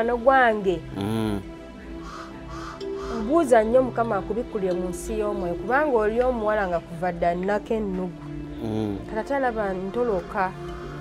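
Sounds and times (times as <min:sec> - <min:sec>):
background music: 0:00.0 - 0:11.0
person speaking: 0:00.9 - 0:01.4, 0:08.6 - 0:09.2.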